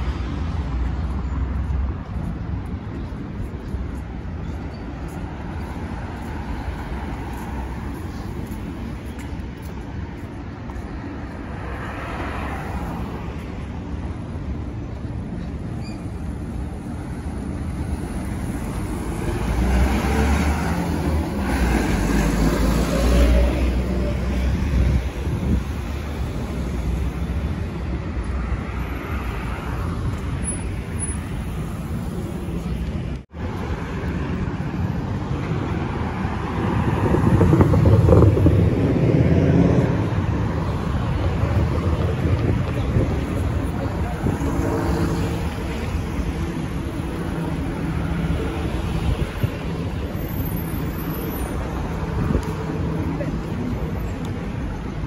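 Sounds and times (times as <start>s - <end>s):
cars driving past: 4.2s - 55.0s.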